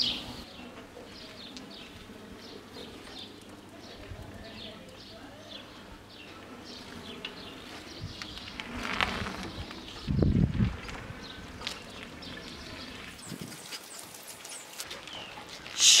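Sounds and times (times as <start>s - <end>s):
bicycle tyres hissing on asphalt: 7.6s - 14.8s, 15.6s - 16.0s.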